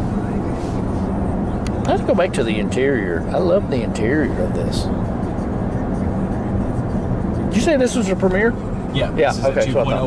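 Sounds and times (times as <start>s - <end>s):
car cabin road noise: 0.0s - 10.0s.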